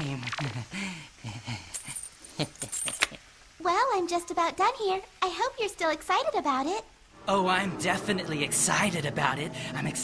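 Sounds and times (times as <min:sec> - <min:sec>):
man snickering: 0:00.0 - 0:03.2.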